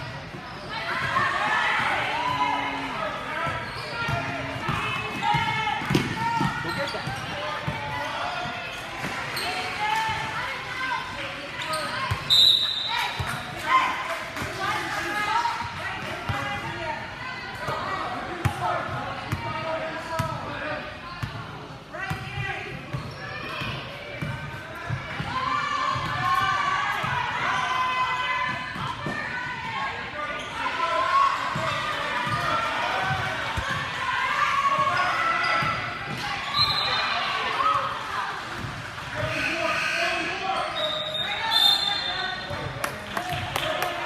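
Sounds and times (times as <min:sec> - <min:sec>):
voices calling out in gym: 0:00.0 - 0:44.0.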